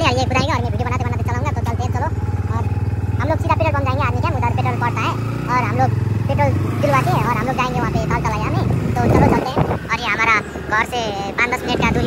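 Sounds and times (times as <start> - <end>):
man talking: 0.0 - 12.0
motorcycle engine idling: 0.0 - 12.0.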